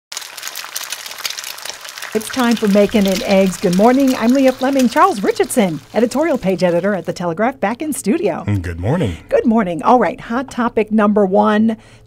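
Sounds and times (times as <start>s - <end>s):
eggs sizzling in a frying pan: 0.1s - 7.6s.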